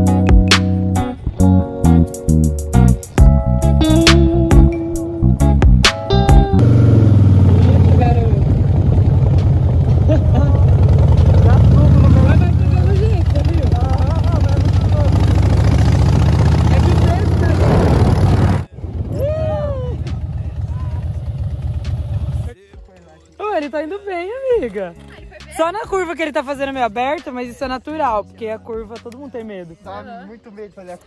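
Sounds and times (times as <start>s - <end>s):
motorcycle engine running: 5.6s - 19.0s, 20.0s - 23.4s.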